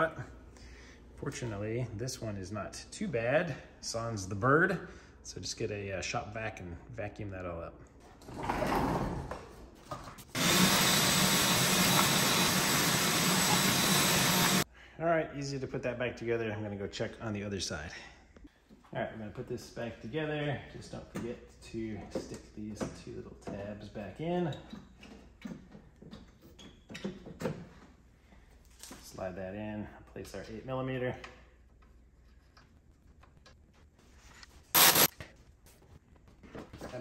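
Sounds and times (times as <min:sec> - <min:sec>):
shop vac running: 0:10.3 - 0:14.7, 0:34.8 - 0:35.1.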